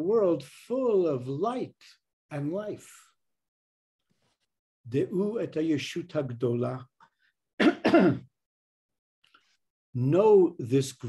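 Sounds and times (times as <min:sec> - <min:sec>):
man clearing his throat: 0:07.6 - 0:08.3.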